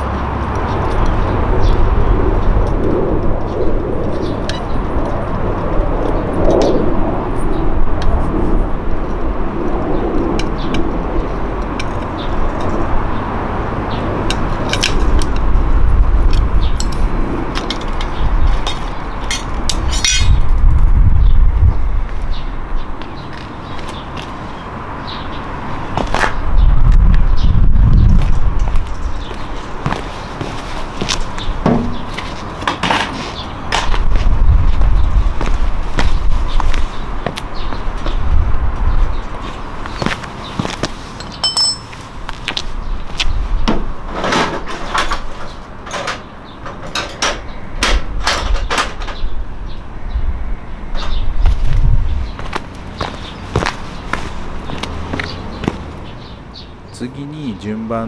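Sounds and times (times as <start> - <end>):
tools clicking and clinking: 18.7 - 20.4, 41.2 - 42.4.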